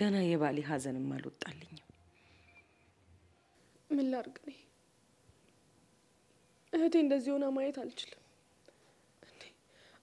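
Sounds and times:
faint breathing: 0:02.1 - 0:03.0, 0:08.6 - 0:10.0.

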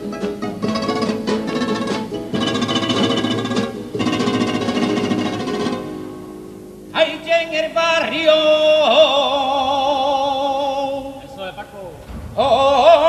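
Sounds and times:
guitars strumming and plucking: 0:00.0 - 0:07.0.

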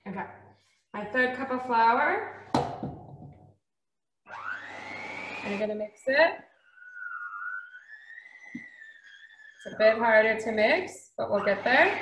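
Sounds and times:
hand mixer motor whining: 0:04.3 - 0:10.6, 0:11.2 - 0:12.0.

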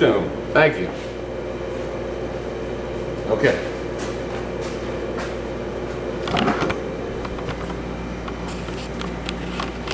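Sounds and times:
steady mechanical hum: 0:00.0 - 0:09.9.

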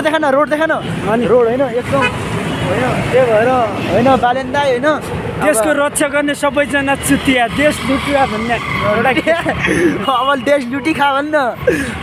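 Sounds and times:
man's voice: 0:00.0 - 0:12.0
street traffic: 0:00.0 - 0:12.0.

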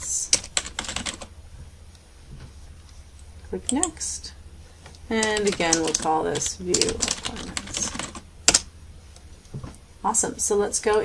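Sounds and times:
keyboard and mouse clicks: 0:04.9 - 0:08.7.

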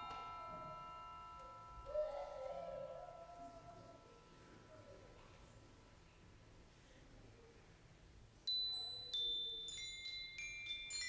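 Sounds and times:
glockenspiel-like mallet notes: 0:00.0 - 0:02.7, 0:08.5 - 0:11.0.

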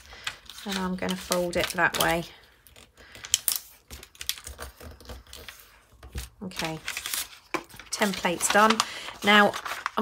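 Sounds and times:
paper crackling: 0:00.0 - 0:10.0.

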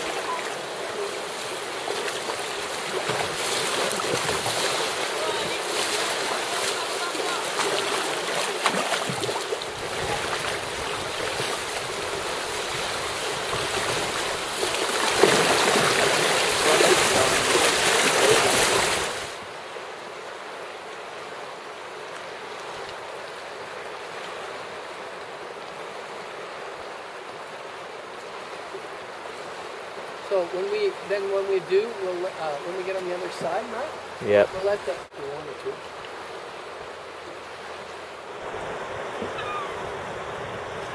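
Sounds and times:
river rapids rushing: 0:00.0 - 0:40.9.

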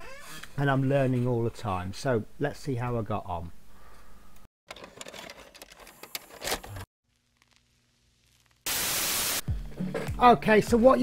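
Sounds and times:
faint crackle and clicks: 0:05.5 - 0:08.7
burst of tape static: 0:07.1 - 0:09.4.

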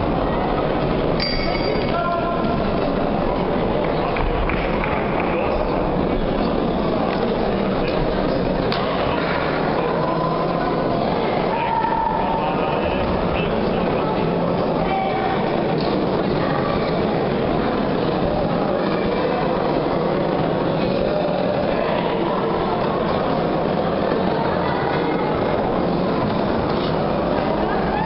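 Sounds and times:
crowd talking in echoing hall: 0:00.0 - 0:28.0.

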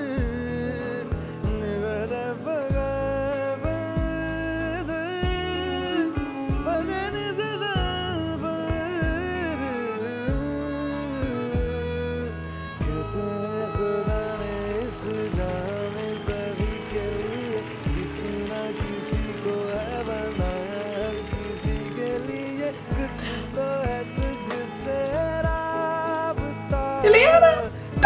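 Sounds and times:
acoustic guitar: 0:00.0 - 0:28.0
man singing: 0:00.0 - 0:28.0.

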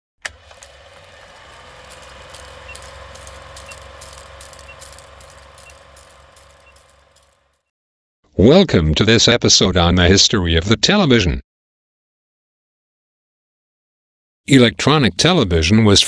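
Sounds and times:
film projector whirring hum: 0:00.2 - 0:07.7.

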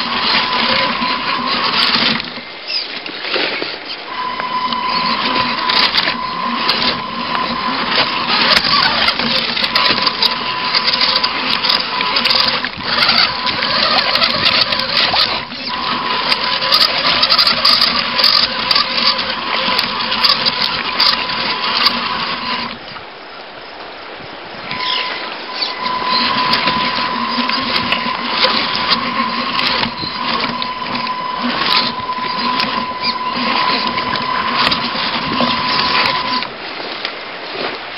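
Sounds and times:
electric motor and gears whining: 0:00.0 - 0:02.8, 0:04.1 - 0:23.0, 0:24.6 - 0:36.6.

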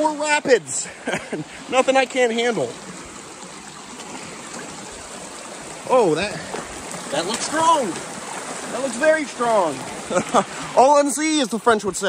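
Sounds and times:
stream rushing over rocks: 0:00.0 - 0:12.0.

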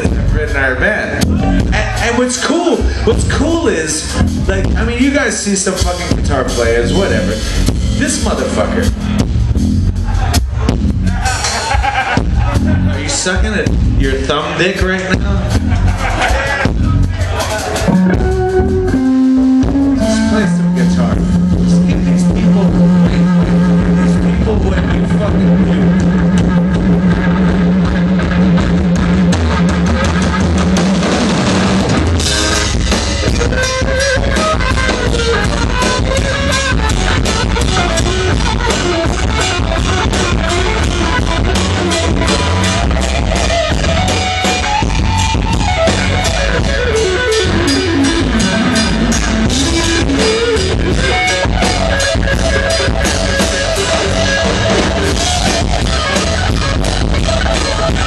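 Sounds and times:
drum kit steady beat: 0:00.0 - 0:58.0
lead guitar line bending: 0:00.0 - 0:58.0
live rock band playing: 0:00.0 - 0:58.0
low held note: 0:17.9 - 0:24.0.

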